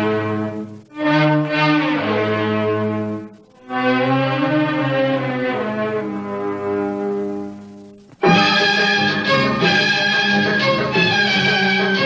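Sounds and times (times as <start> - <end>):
orchestral strings and brass chords: 0.0 - 12.0.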